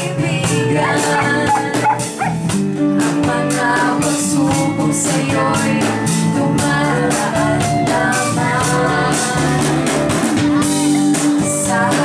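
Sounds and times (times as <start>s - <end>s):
live band with guitars and drums: 0.0s - 12.0s.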